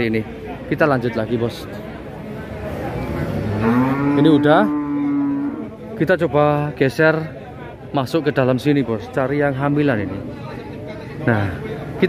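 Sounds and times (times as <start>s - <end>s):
cow mooing: 3.4s - 5.7s.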